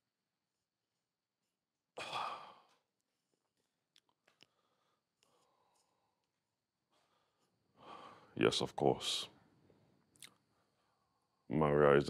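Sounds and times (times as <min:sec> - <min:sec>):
man sighing heavily: 0:02.0 - 0:02.7.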